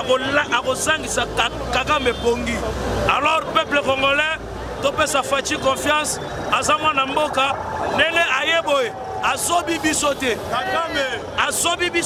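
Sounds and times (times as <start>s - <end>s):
crowd voices: 0.0s - 12.0s
man shouting: 10.5s - 11.7s.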